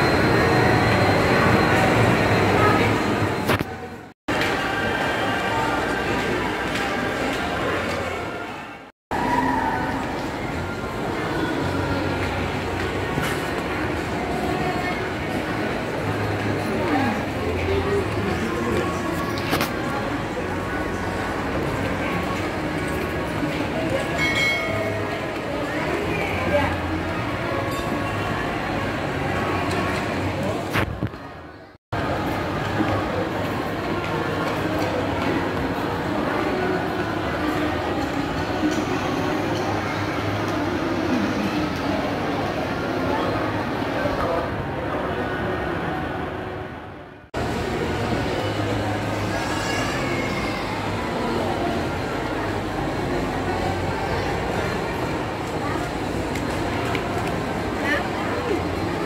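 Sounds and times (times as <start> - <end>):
indistinct chatter of shoppers: 0.0 - 59.0
murmur of a crowd echoing: 0.0 - 59.0.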